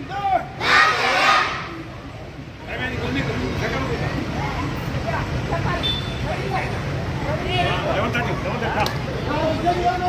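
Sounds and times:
children's voices chattering: 0:03.3 - 0:05.3.

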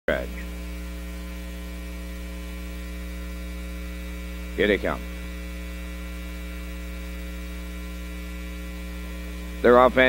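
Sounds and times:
electrical mains hum: 0:00.1 - 0:10.0.

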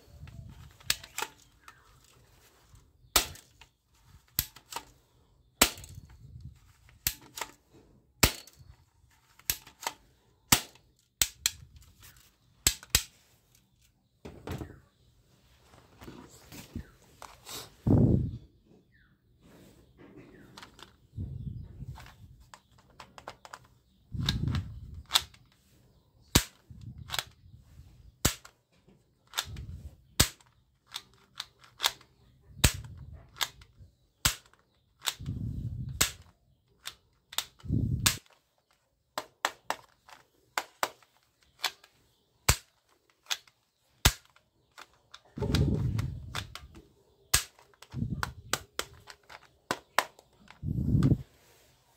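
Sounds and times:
toy pistol slide scraping: 0:00.0 - 0:05.1
toy gun mechanism clicking: 0:00.1 - 0:02.2, 0:03.1 - 0:05.0, 0:05.6 - 0:07.6, 0:08.2 - 0:13.7, 0:22.7 - 0:25.5, 0:26.3 - 0:27.4, 0:28.2 - 0:28.6, 0:29.2 - 0:50.6.

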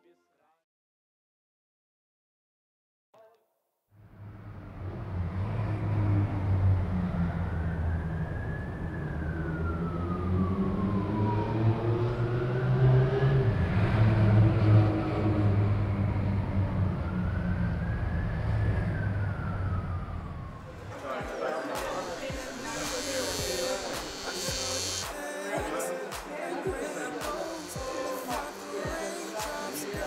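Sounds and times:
street traffic engine rumble: 0:04.0 - 0:25.1
emergency siren wailing: 0:04.0 - 0:30.0.

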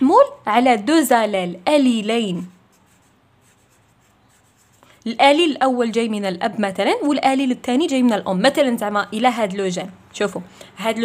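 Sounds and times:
marker pen scratching on paper: 0:01.8 - 0:05.0.

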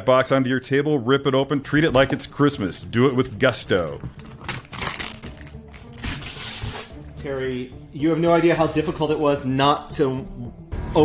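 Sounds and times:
background music: 0:00.0 - 0:11.0
packing tape ripping off cardboard: 0:03.2 - 0:07.0.

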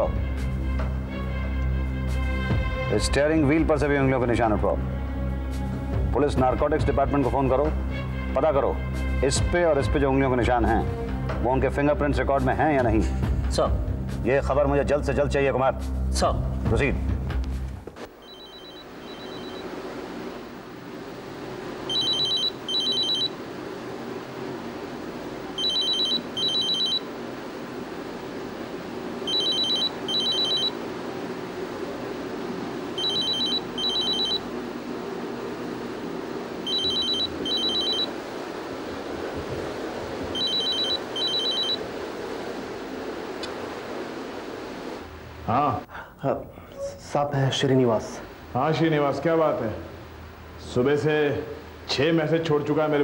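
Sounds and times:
low hiss and hum: 0:00.0 - 0:53.0
telephone ringing: 0:18.2 - 0:19.7, 0:21.9 - 0:23.4, 0:25.6 - 0:27.1, 0:29.2 - 0:30.8, 0:33.0 - 0:34.5, 0:36.6 - 0:38.2, 0:40.4 - 0:41.8.

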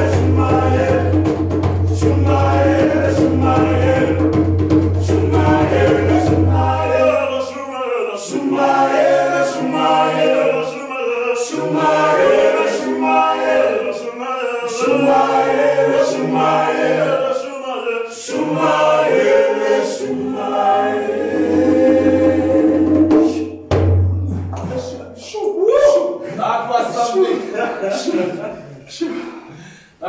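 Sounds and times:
djembe hand-drum strokes: 0:00.0 - 0:07.3, 0:20.8 - 0:25.3
male vocal group singing: 0:00.0 - 0:23.6.

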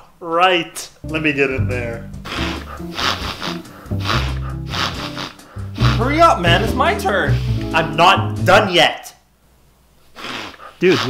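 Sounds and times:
background music: 0:01.0 - 0:08.8
man sniffing hard: 0:02.2 - 0:06.3, 0:07.3 - 0:07.7, 0:10.1 - 0:11.0.

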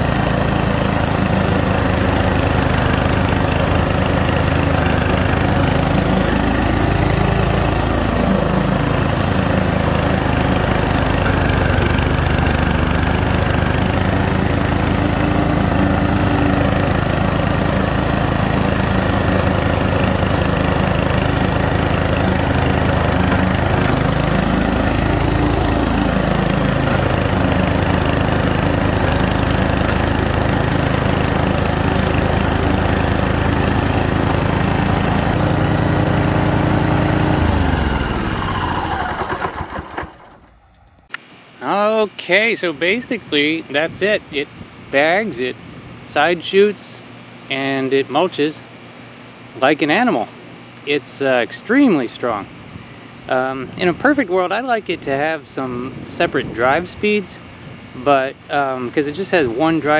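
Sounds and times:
lawn mower engine running: 0:00.0 - 0:59.9.

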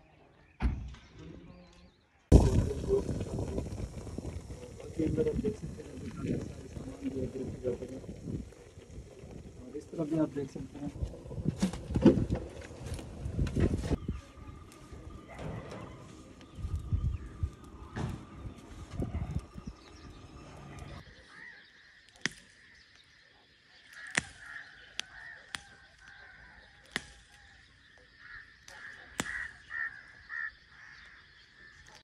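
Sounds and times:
birds calling: 0:00.0 - 0:32.0
low rumbling bumps: 0:02.3 - 0:21.0.

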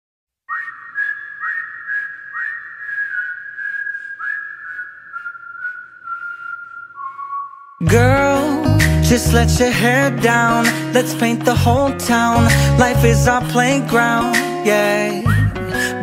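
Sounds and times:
whistled melody: 0:00.5 - 0:11.0, 0:12.3 - 0:16.0
pop song with singing: 0:07.8 - 0:16.0.

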